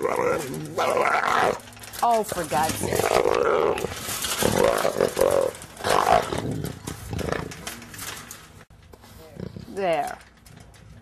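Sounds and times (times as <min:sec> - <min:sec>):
jaguar vocalising in rough bursts: 0:02.8 - 0:07.6.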